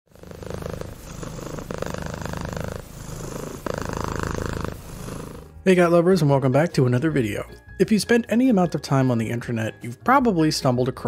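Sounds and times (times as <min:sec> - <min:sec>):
cat purring: 0:00.1 - 0:05.6.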